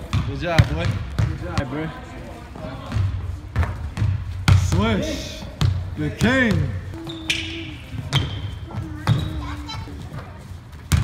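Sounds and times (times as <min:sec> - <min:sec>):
basketball bouncing on wooden floor: 0:00.0 - 0:01.7, 0:02.9 - 0:04.9, 0:05.5 - 0:07.2, 0:08.0 - 0:09.4.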